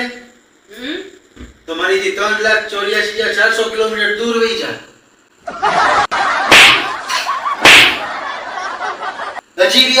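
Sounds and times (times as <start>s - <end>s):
cushion slap hits: 6.5s - 7.0s, 7.6s - 8.2s.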